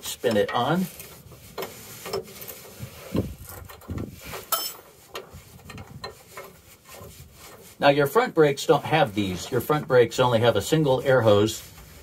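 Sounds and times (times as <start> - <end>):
metal clinks and knocks: 3.4 - 5.0.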